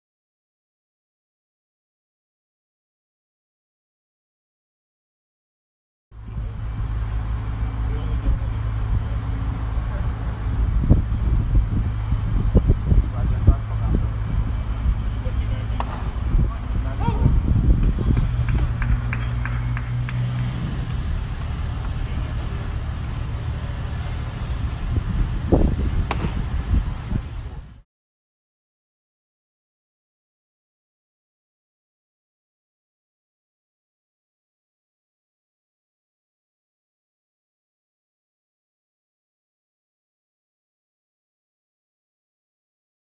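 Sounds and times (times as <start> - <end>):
steady low hum: 6.2 - 27.8.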